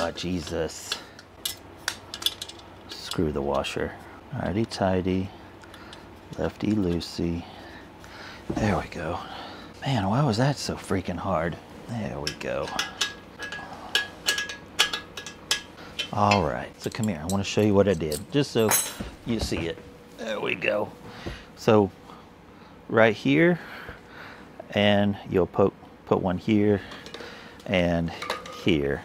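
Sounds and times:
hand tool clinking on metal: 12.2s - 19.5s.

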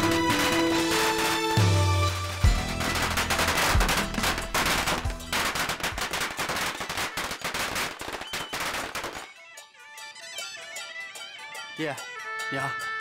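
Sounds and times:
background music: 0.0s - 7.4s, 9.1s - 13.0s
firecrackers crackling: 0.0s - 9.4s.

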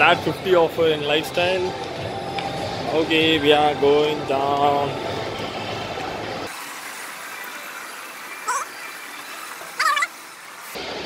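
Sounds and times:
shopping mall background noise: 0.0s - 11.0s
distant voice calls: 8.3s - 9.0s, 9.7s - 10.2s.

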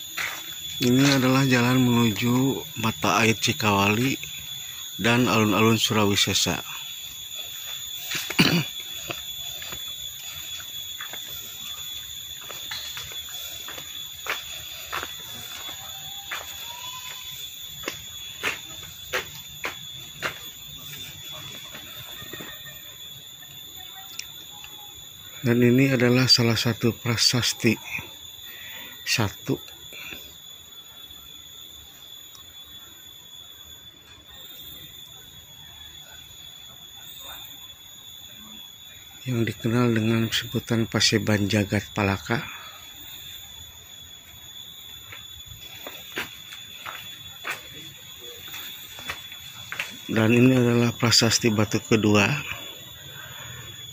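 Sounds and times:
footsteps on paved path: 0.0s - 1.9s, 7.2s - 22.7s, 45.0s - 50.1s
high-pitched whine: 0.0s - 53.9s.

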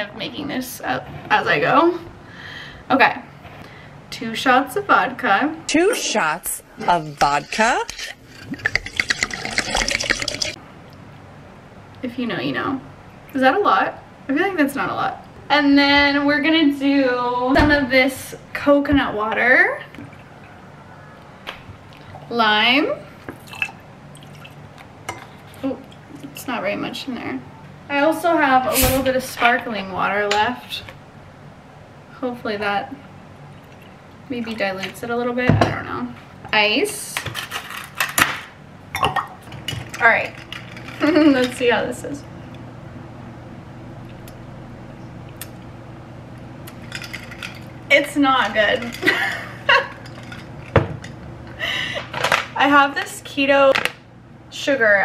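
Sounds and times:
liquor glugging into a glass: 8.3s - 10.6s.

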